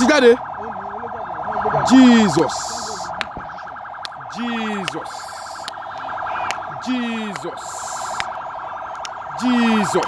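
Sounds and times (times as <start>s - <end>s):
pulsing electronic alarm tone: 0.0s - 10.0s.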